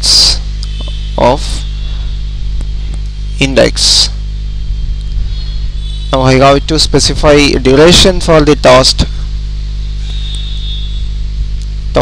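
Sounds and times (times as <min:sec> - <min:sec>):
faint high whine: 0:00.0 - 0:12.0
low electrical hum: 0:00.0 - 0:12.0.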